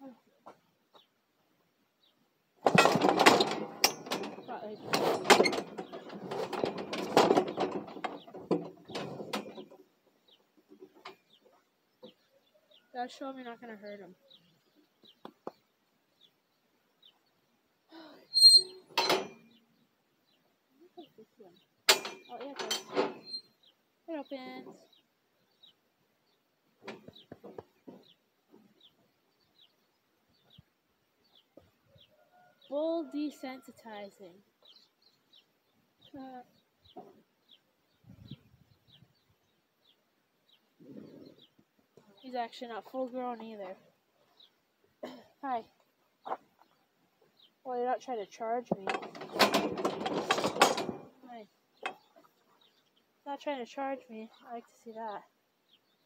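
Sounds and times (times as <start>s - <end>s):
cattle chute rattling and clanking: 2.6s - 9.9s, 18.4s - 19.5s, 21.9s - 23.5s, 48.7s - 51.2s, 51.8s - 52.1s
bird chirping: 7.4s - 17.7s, 18.3s - 32.8s, 33.6s - 44.7s, 45.7s - 49.4s, 50.9s - 56.0s.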